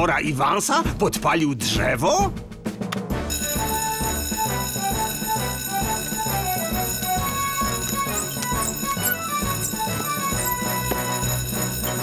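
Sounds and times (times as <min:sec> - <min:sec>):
cartoon action music: 0:03.1 - 0:12.0
alarm bell ringing: 0:03.3 - 0:12.0.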